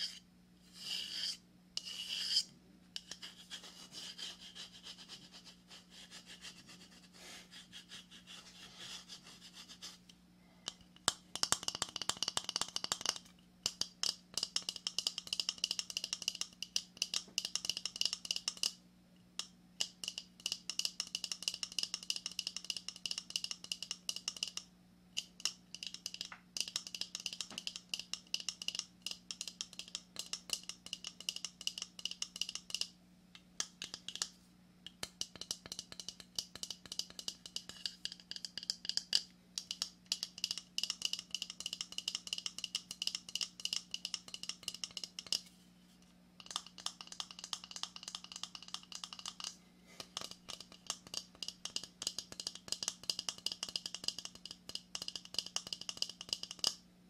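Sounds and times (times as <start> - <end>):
fingernails tapping and scratching shell: 33.6 - 34.3, 34.9 - 45.5, 46.4 - 56.7.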